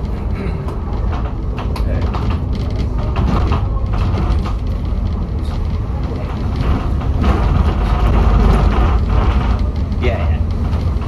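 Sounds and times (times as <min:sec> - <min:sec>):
bus engine drone: 0:00.0 - 0:11.0
light body rattles: 0:00.0 - 0:11.0
road rumble: 0:00.0 - 0:11.0.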